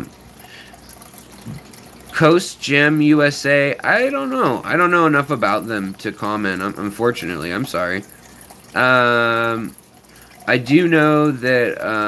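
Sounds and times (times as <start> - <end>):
aquarium water trickling and bubbling: 0.0 - 12.0.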